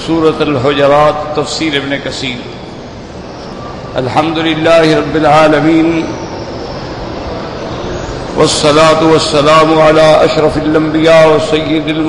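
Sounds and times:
steady hiss and rumble: 0:00.0 - 0:12.0.

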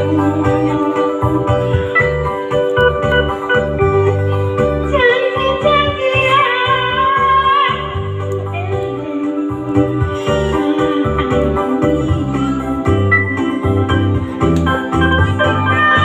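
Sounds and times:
woman singing into a microphone: 0:00.0 - 0:03.1, 0:03.7 - 0:16.0
electronic keyboard backing: 0:00.0 - 0:16.0.

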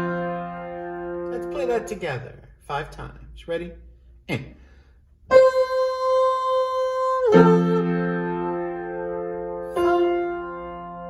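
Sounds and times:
piano notes and chords: 0:00.0 - 0:02.2, 0:05.3 - 0:11.0.

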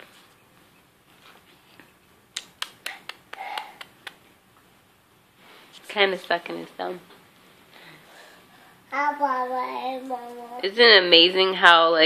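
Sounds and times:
baby sucking thumb wet clicks: 0:02.4 - 0:04.2.

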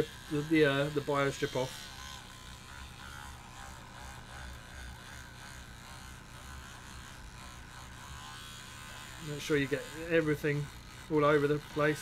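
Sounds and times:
electric toothbrush buzzing: 0:00.0 - 0:12.0.

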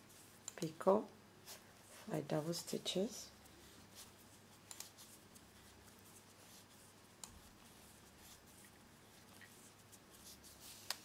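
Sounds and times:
thread rustling on needle: 0:00.0 - 0:11.0.

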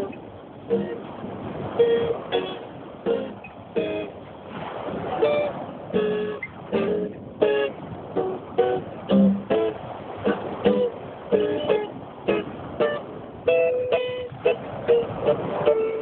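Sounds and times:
acoustic guitar picked melody: 0:00.0 - 0:16.0
surf rushing: 0:00.0 - 0:16.0.

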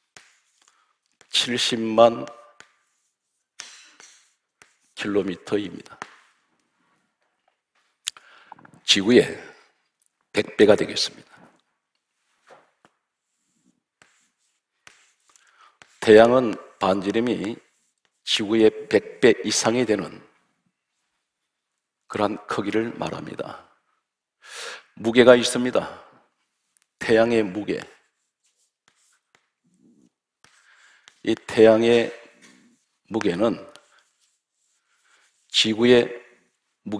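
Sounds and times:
chalk writing on blackboard: 0:00.0 - 0:08.0, 0:12.0 - 0:19.2, 0:26.3 - 0:36.8.

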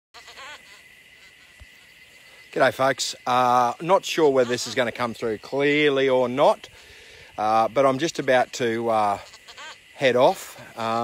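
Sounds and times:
faint high-pitched hiss: 0:00.2 - 0:11.0
quick animal calls: 0:09.1 - 0:09.9.

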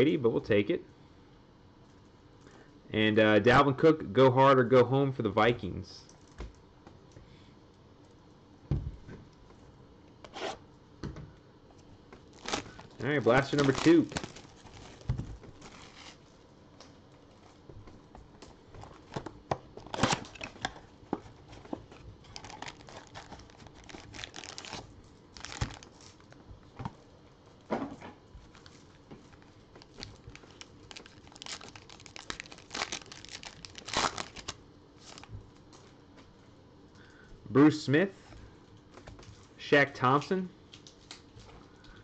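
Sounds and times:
foil packs crinkling and ripping: 0:12.2 - 0:16.3, 0:19.8 - 0:20.9, 0:21.9 - 0:26.4, 0:28.5 - 0:35.4
plastic shrink-wrap tearing: 0:12.3 - 0:16.3, 0:19.8 - 0:20.6, 0:22.3 - 0:26.4, 0:28.6 - 0:35.3.

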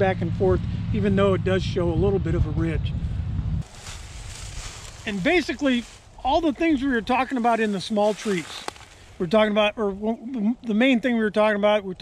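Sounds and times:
wind rumbling on microphone: 0:00.0 - 0:10.2
faint outdoor hiss: 0:03.6 - 0:12.0.

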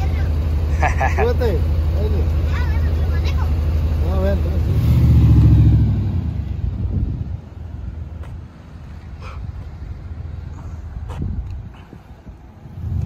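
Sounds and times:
pickup truck engine driving off: 0:00.0 - 0:07.6.

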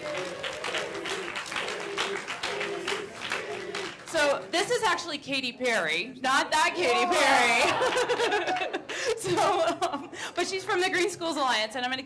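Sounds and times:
audience applauding: 0:00.0 - 0:04.6, 0:07.1 - 0:08.8
voices: 0:00.0 - 0:08.0.

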